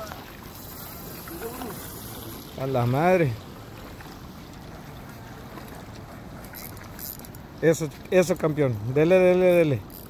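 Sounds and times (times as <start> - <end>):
surf at the shore: 0.0 - 10.0
wind: 0.0 - 10.0.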